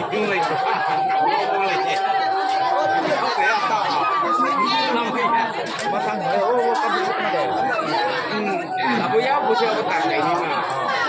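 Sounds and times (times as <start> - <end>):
many people talking: 0.0 - 11.0
bamboo flute long notes: 0.4 - 9.1.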